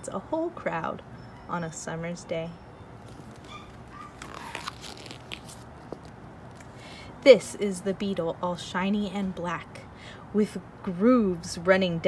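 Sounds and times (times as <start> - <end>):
paper page turning: 3.1 - 6.2.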